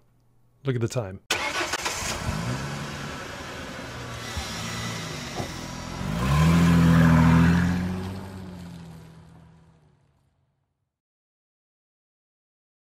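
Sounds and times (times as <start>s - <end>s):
car engine revving: 1.3s - 10.2s.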